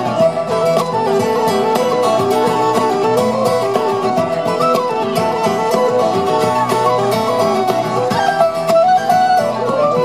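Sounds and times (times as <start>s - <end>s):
low whistle folk melody: 0.0s - 10.0s
strummed acoustic guitar: 0.0s - 10.0s.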